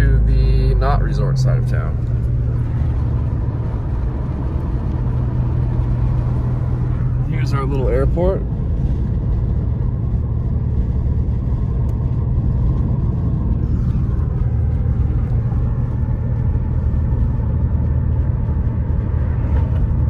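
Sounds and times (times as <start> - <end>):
car interior road rumble: 0.0 - 20.0.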